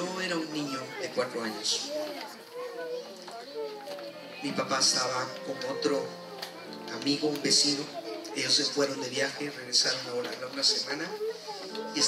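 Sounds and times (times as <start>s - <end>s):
children talking quietly: 0.0s - 12.0s.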